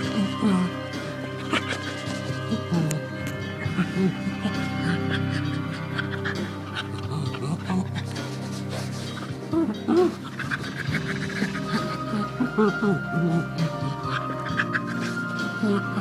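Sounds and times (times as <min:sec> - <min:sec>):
background music with held notes: 0:00.0 - 0:16.0
pet panting: 0:00.0 - 0:16.0.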